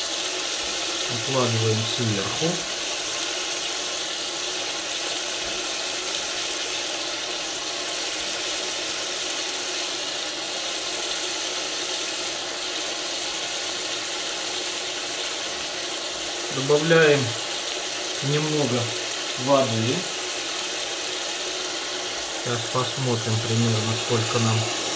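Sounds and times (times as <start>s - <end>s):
hiss of food frying in a pot: 0.0s - 24.9s.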